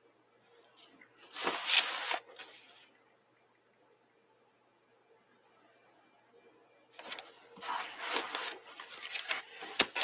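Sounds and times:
paper scraping and rustling: 1.2 - 2.9, 7.0 - 10.0.

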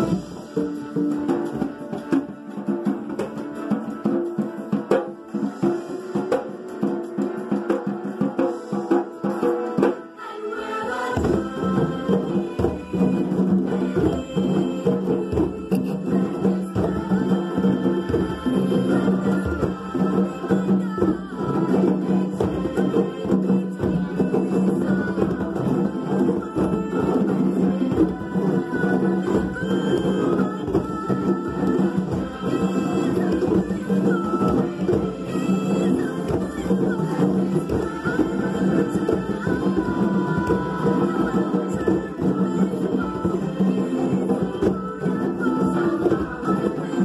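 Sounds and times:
children playing hand drums: 0.0 - 47.0
recorded song with singing: 0.0 - 47.0.

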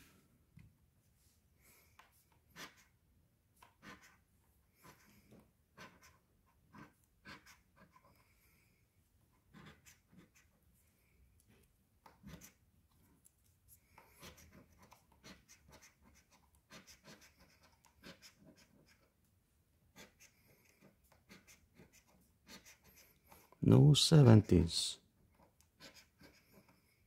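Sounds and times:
coin scratching lottery ticket: 3.8 - 4.2, 9.5 - 10.5, 14.2 - 19.1, 20.0 - 23.6.

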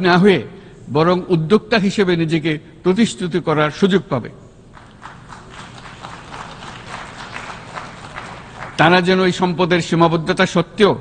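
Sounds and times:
distant audience applause: 4.8 - 9.1
person giving a speech: 8.4 - 11.0.

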